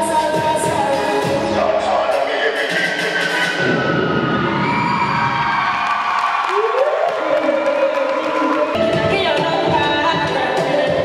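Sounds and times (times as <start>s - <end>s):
dance music over loudspeakers: 0.0s - 4.3s, 6.5s - 11.0s
audience cheering and whooping: 3.6s - 8.8s.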